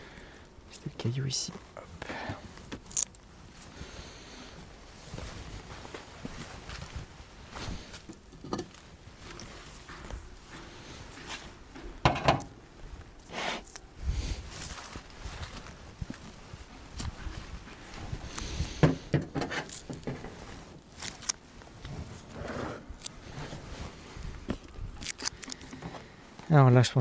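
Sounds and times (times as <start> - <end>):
footsteps: 4.5 - 22.3
handling knocks and thumps: 11.8 - 12.6
rustling: 12.8 - 26.5.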